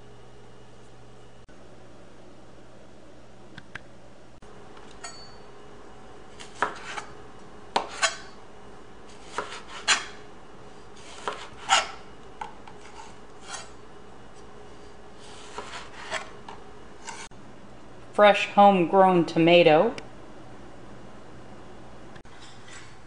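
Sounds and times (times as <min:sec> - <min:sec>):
knife slicing tomato: 0:06.4 - 0:08.3, 0:09.1 - 0:10.2, 0:11.0 - 0:12.1, 0:15.2 - 0:16.4, 0:17.0 - 0:17.3.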